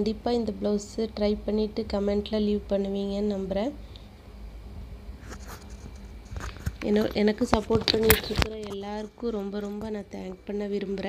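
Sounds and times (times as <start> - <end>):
woman speaking: 0.0 - 3.8, 6.8 - 11.0.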